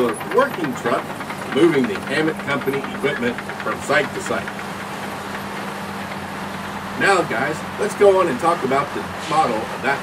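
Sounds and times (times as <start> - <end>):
heavy machinery engine droning: 0.0 - 10.0.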